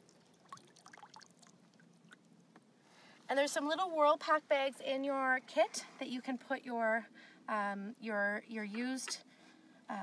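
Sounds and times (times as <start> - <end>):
water trickling and dripping: 0.0 - 2.6.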